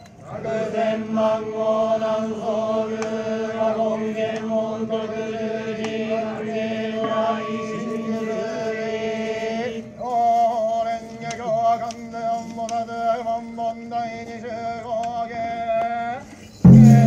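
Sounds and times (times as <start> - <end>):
group chanting in unison: 0.2 - 10.1.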